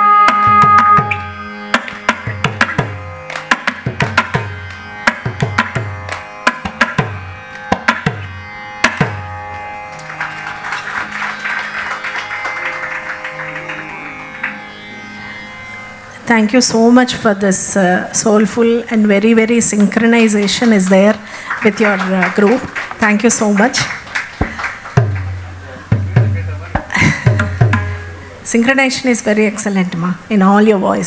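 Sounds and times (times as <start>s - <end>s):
hand drum strokes: 0.0s - 9.6s, 24.4s - 28.4s
faint drone: 8.2s - 20.0s
audience applause: 9.5s - 15.3s, 20.4s - 28.4s.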